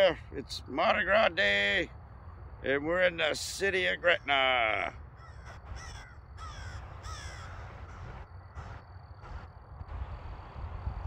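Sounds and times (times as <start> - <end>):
crow cawing: 5.1 - 9.5.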